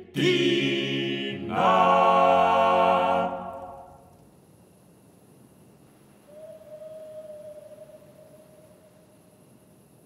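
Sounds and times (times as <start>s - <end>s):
dog or wolf howling: 6.4s - 8.8s.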